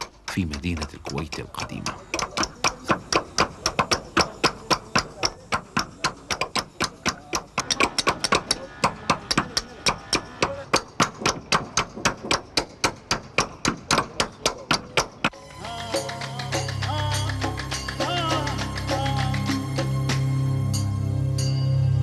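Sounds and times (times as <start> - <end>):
hammers striking caulking irons: 0.0 - 15.3
music: 1.8 - 22.0.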